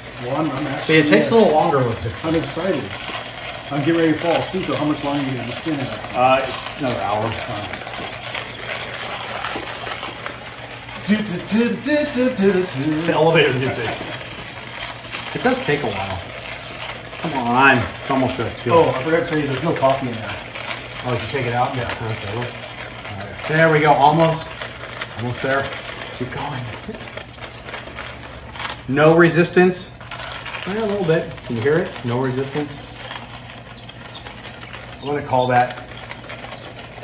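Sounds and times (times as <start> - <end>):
hand-cranked coffee grinder grinding: 0.0 - 37.0.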